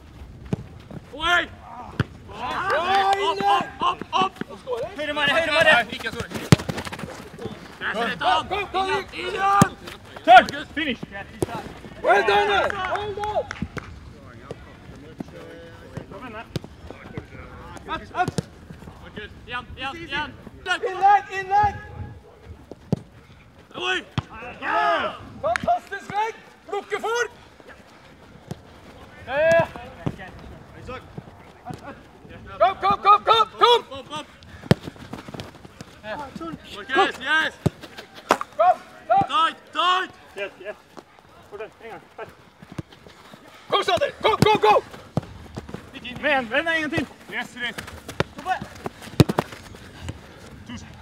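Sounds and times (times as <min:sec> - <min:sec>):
players shouting: 0:01.1 - 0:13.8, 0:15.4 - 0:22.2, 0:23.7 - 0:51.0
football being kicked: 0:05.6 - 0:07.7, 0:09.5 - 0:10.6, 0:15.9 - 0:18.6, 0:34.6 - 0:36.6, 0:43.9 - 0:50.2
football kicked hard: 0:06.1 - 0:07.6, 0:34.6 - 0:35.9, 0:47.7 - 0:50.2
ball and feet knocks: 0:06.2 - 0:07.3, 0:47.8 - 0:50.2.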